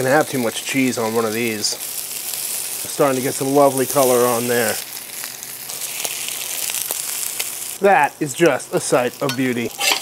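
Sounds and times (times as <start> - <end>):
food sizzling on griddle: 0.0 - 10.0.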